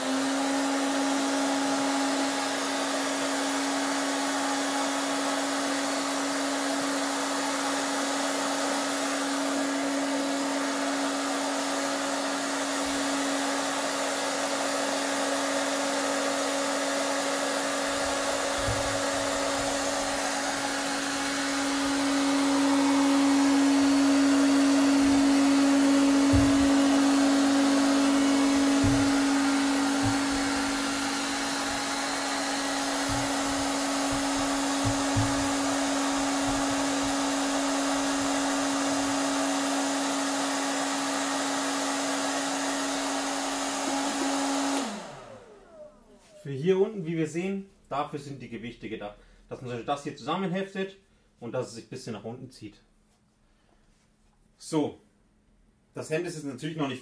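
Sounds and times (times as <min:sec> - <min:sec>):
hot-air blower humming: 0:00.0 - 0:46.7
soft low thumps: 0:17.9 - 0:20.3, 0:24.8 - 0:39.2.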